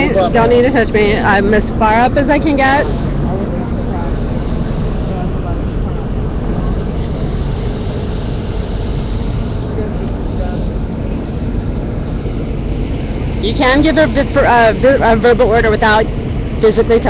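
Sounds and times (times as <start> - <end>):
faint crowd voices: 0.0 - 7.3
low rumble of street noise: 0.0 - 17.0.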